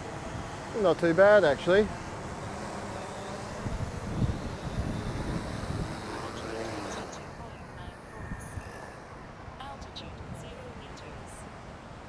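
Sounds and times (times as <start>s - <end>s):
drone rotors whirring: 0.0s - 9.6s
wind rumble on microphone: 3.4s - 8.9s.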